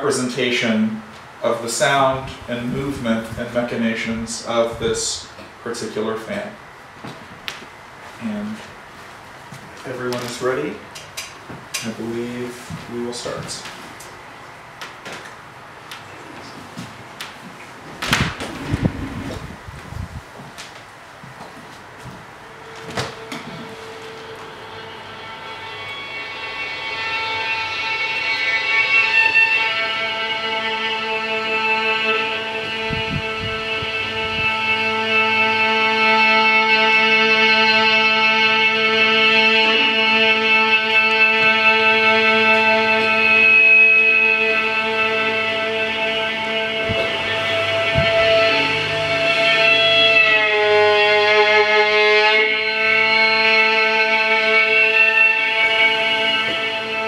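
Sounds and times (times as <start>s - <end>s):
violin sustained notes: 0.0s - 6.6s, 22.4s - 57.0s
steady low hum: 0.0s - 57.0s.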